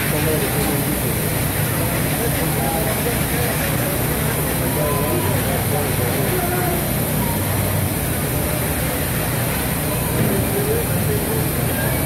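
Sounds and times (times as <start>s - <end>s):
background chatter of people: 0.0s - 12.0s.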